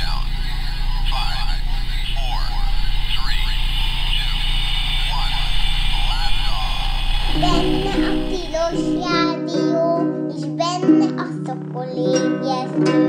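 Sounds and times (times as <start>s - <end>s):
low hum: 0.0s - 9.1s
radio voice chatter: 0.0s - 9.2s.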